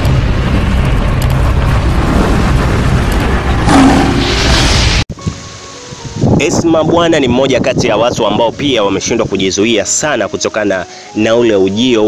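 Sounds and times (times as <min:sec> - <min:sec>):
intro music with booming effects: 0:00.0 - 0:05.4.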